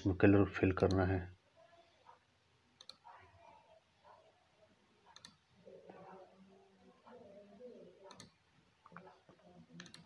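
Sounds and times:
faint computer mouse clicks: 5.1s - 5.4s.

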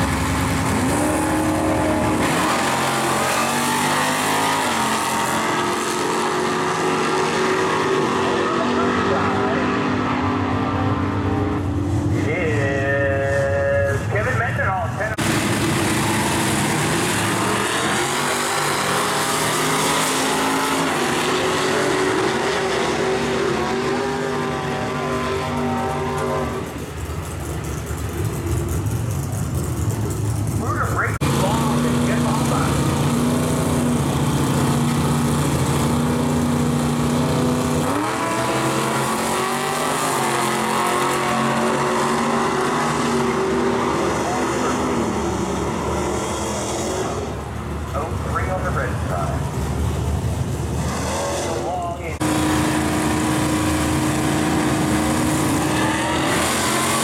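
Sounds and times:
cars accelerating away: 0.0s - 12.8s, 15.2s - 57.0s
muscle car engines revving: 0.0s - 57.0s.

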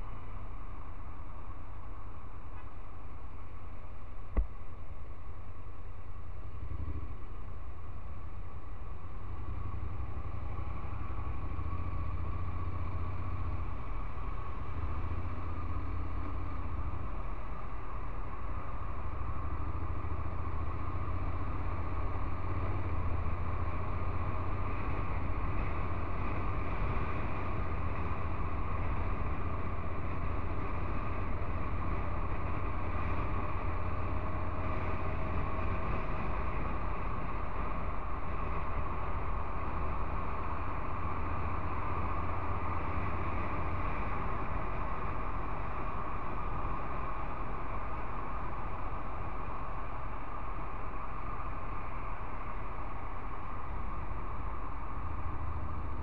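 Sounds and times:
wind and road noise: 0.0s - 56.0s
motorcycle engine running: 6.2s - 56.0s.

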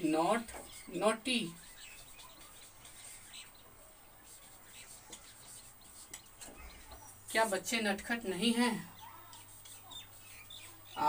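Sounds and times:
marker squeaking on whiteboard: 0.3s - 11.0s.

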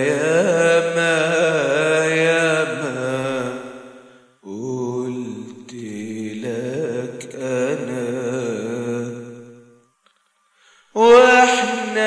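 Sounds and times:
person singing long wordless notes: 0.0s - 12.0s.

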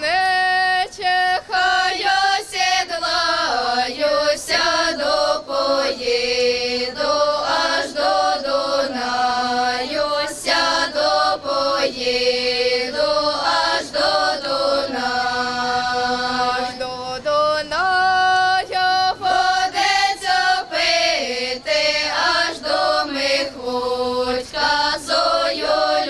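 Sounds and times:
girls singing in harmony: 0.0s - 26.0s.

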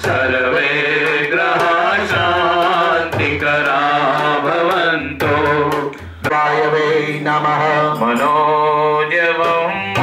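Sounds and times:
men chanting: 0.0s - 10.0s.

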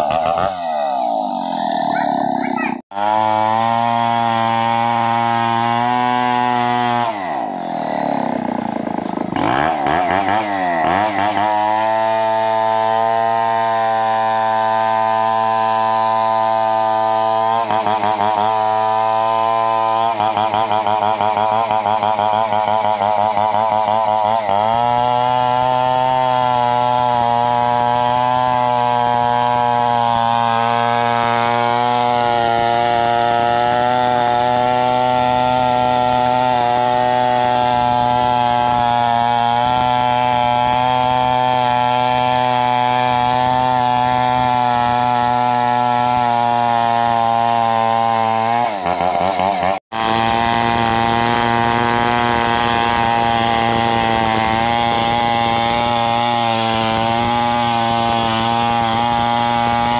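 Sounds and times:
chainsaw cutting wood at high revs: 0.0s - 59.9s.

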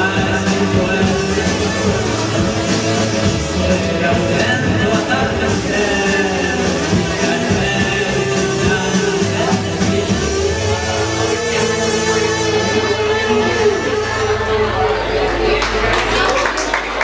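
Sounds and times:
drum kit: 0.0s - 14.8s
bass guitar: 0.0s - 17.0s
electric guitar: 0.0s - 17.0s
keyboard: 0.0s - 17.0s.

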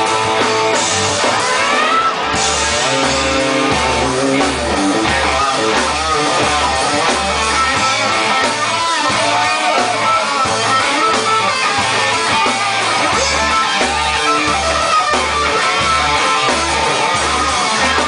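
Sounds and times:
live rock band playing: 0.0s - 18.0s
pulsing bass notes: 0.0s - 18.0s.

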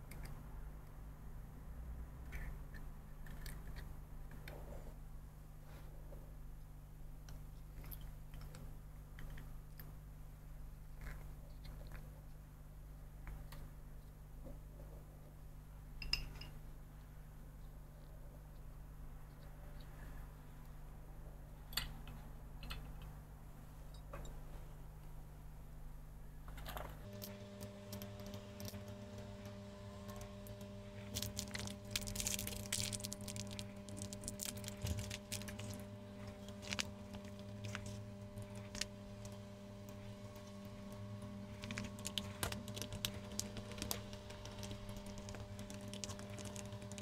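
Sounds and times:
low steady hum: 0.0s - 47.0s
small plastic parts clicking: 26.5s - 40.6s, 41.2s - 47.0s
rustling and crackling: 26.9s - 47.0s.

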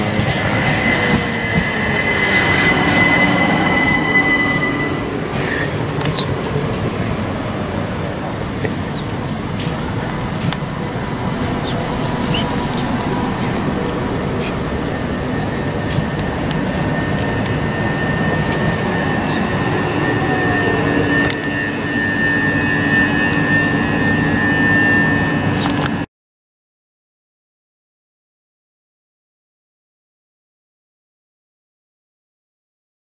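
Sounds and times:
train wheels rumbling on rail: 0.0s - 26.0s
thin high steady tone: 0.4s - 7.1s, 8.0s - 25.6s.

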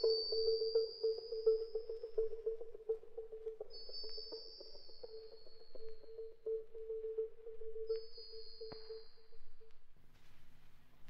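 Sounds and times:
high whistling tone gliding down: 0.0s - 9.7s
faint clicks: 0.0s - 10.8s.

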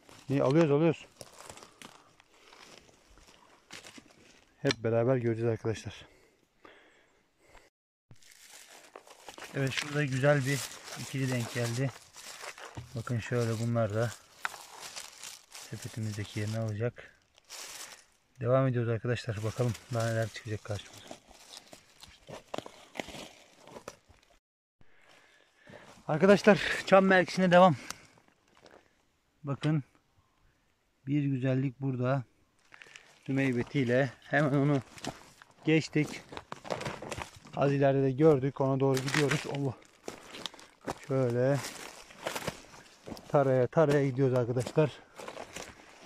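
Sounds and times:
footsteps on dry leaves: 0.0s - 4.6s, 8.1s - 18.2s, 19.3s - 24.2s, 32.6s - 37.8s, 38.9s - 46.0s.

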